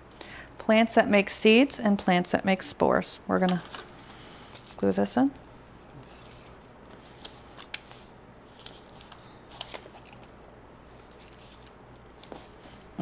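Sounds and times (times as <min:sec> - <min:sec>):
paper rustling: 0:06.0 - 0:12.9.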